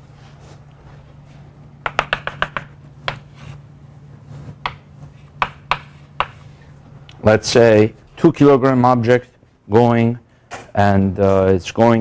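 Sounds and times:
chalk tapping on chalkboard: 0:01.8 - 0:03.6, 0:04.6 - 0:06.5.

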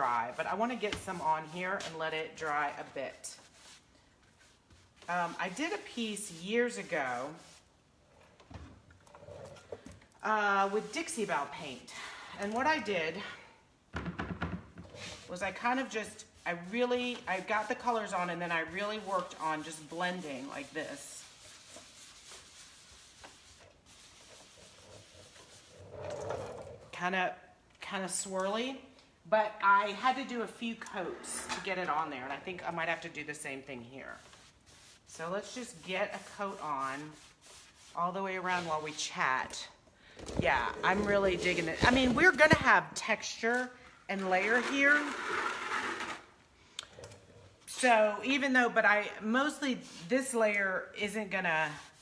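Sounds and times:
paintbrush rubbing on wood: 0:00.0 - 0:07.7, 0:10.5 - 0:11.9, 0:14.9 - 0:26.5, 0:33.8 - 0:39.1, 0:40.6 - 0:42.6, 0:51.6 - 0:52.0.

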